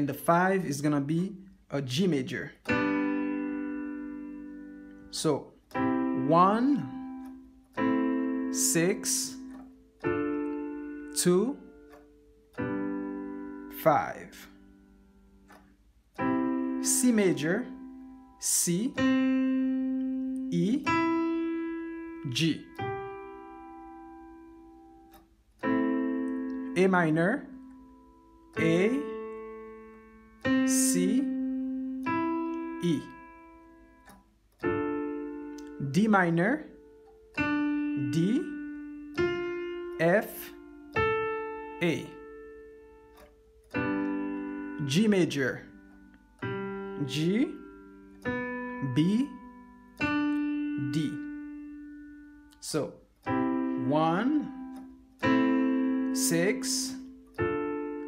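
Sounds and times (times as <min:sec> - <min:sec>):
digital piano chord: 0:00.0 - 0:58.0.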